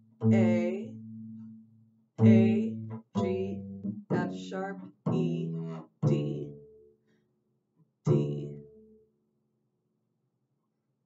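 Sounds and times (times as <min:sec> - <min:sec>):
double bass plucked notes: 0:00.0 - 0:06.8, 0:08.1 - 0:08.8.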